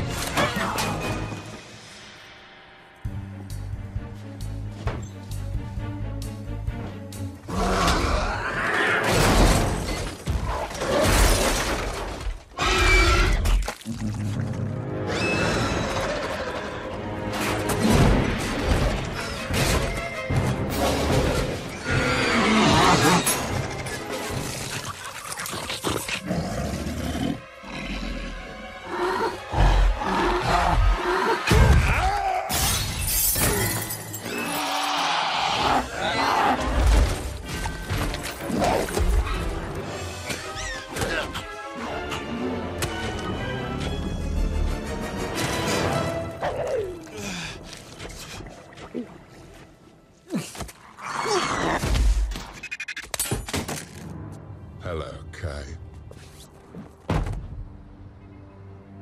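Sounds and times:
dramatic orchestral score: 0.0 - 52.4, 53.9 - 59.0
creature roaring: 34.3 - 36.8.

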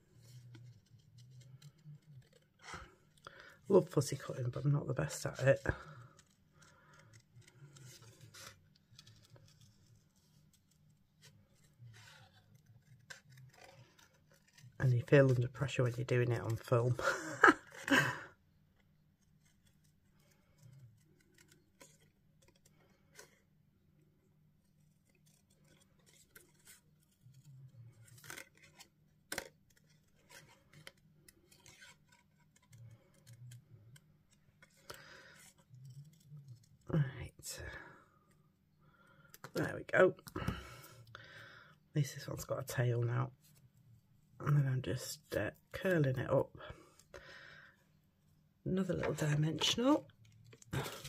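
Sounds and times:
scissors snipping paper: 12.4 - 15.4.

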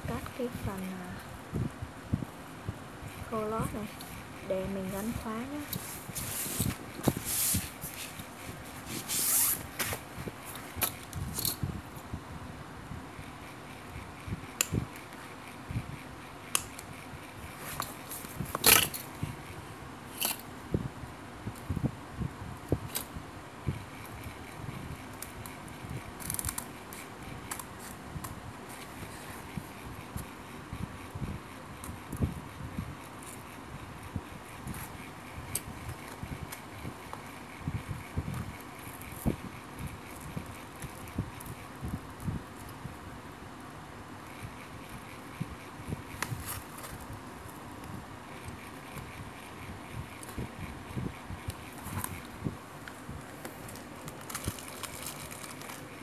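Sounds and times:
hands handling a bag: 52.9 - 56.0.

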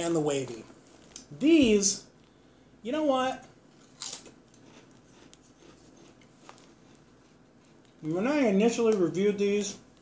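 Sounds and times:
potato chip crunching: 3.8 - 5.4.

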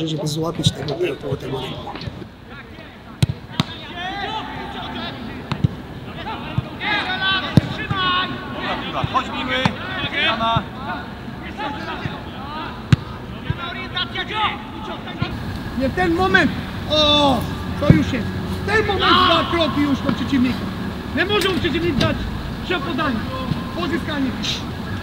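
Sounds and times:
men shouting: 14.1 - 25.0.

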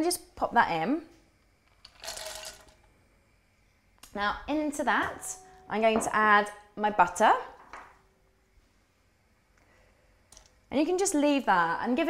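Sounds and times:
chocolate pieces clattering into bowl: 1.8 - 2.8.

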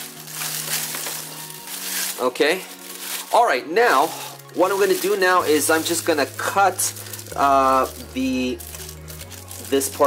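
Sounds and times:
background music: 0.0 - 10.0
cellophane crinkling: 0.0 - 10.0.

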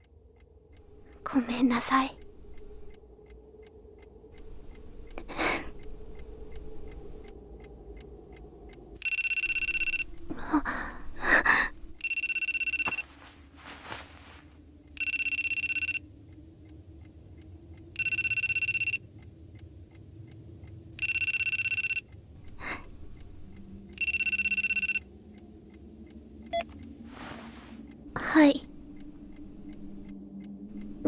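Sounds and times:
mobile phone ringing: 9.0 - 10.0, 12.0 - 13.0, 15.0 - 16.0, 18.0 - 19.0, 21.0 - 22.0, 24.0 - 25.0.

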